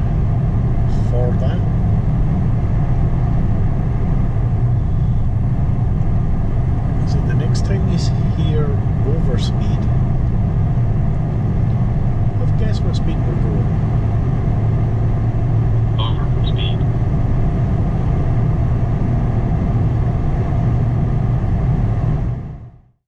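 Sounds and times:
car road noise rumble: 0.0s - 22.9s.

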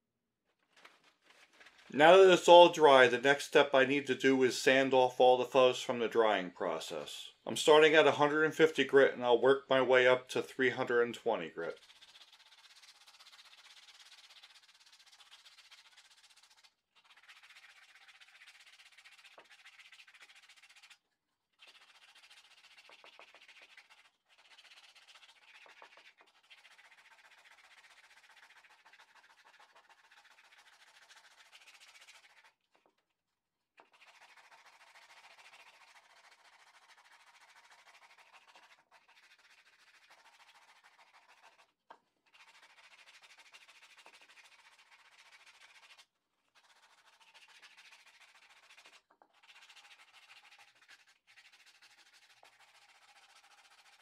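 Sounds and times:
sandpaper rubbing on wood: 21.7s - 32.5s, 33.9s - 41.7s.

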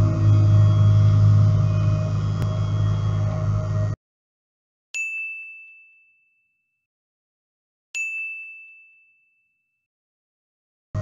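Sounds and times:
bell-like ding: 5.0s - 6.8s, 8.0s - 9.8s.

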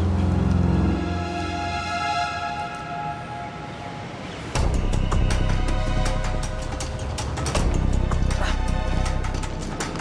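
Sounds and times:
deep bass and drum beat: 4.6s - 10.0s.

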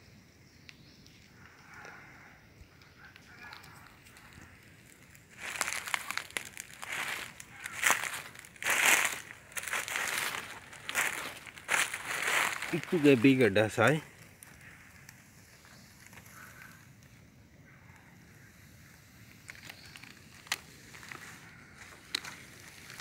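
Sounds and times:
dry leaves crunching and rustling: 4.2s - 14.7s, 19.5s - 23.0s.

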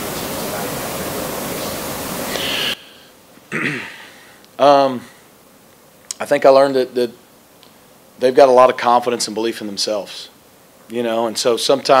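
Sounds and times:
loud steady hiss: 0.0s - 12.0s
man clearing throat: 3.5s - 4.2s.

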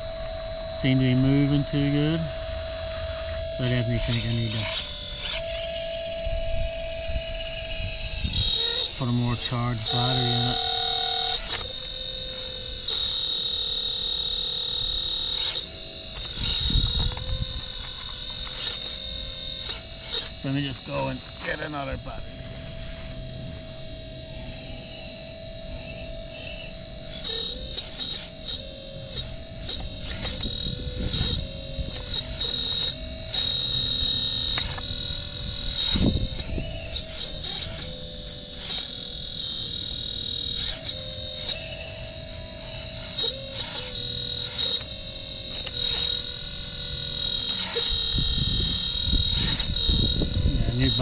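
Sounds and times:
hydraulic pump whining: 0.0s - 51.0s.

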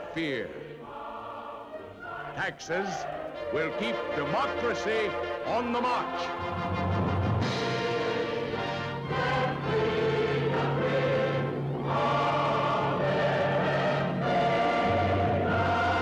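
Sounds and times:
choir singing held chords: 0.0s - 16.0s
orchestral music: 2.1s - 16.0s.

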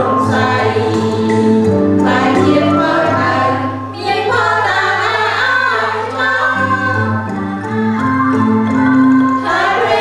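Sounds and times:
mixed choir singing a hymn: 0.0s - 10.0s.

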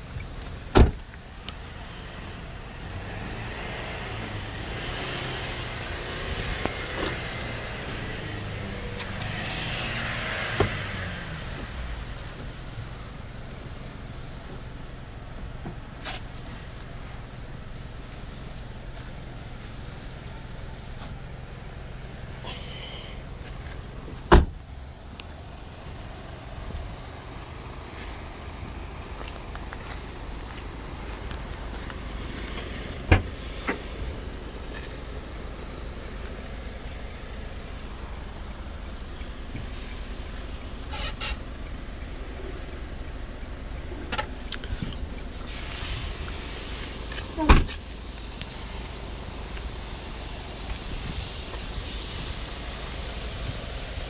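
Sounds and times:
van engine idling: 0.0s - 54.0s.

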